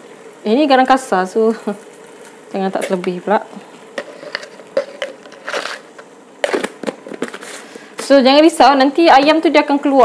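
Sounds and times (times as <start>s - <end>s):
spoon scraping salt in a glass jar: 4.0s - 5.9s
knocks and rustles of containers: 6.4s - 7.6s.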